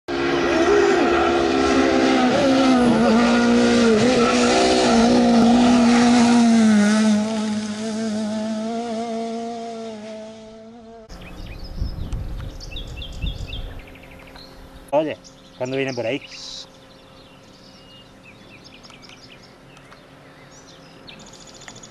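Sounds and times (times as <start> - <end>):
rally car engine high revs: 0.1 - 11.1.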